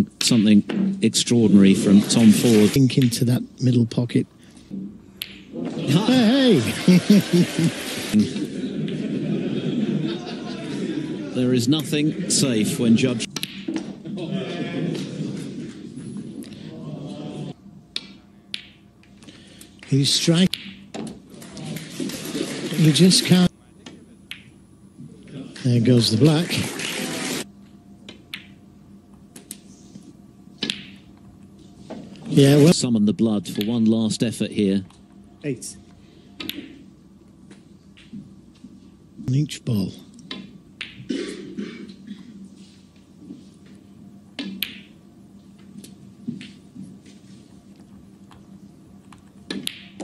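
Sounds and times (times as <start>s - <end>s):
people talking: 0.0s - 4.3s, 5.7s - 8.7s, 9.7s - 13.3s, 19.8s - 20.5s, 22.6s - 24.3s, 25.2s - 27.4s, 32.3s - 35.8s
snooker balls clicking: 4.6s - 5.9s, 13.2s - 14.2s, 17.9s - 19.2s, 19.8s - 22.8s, 23.8s - 24.6s, 28.0s - 29.6s, 30.6s - 32.3s, 36.4s - 36.9s, 37.5s - 38.8s, 40.1s - 41.1s, 44.4s - 50.0s
man speaking: 5.8s - 6.9s, 39.2s - 40.1s.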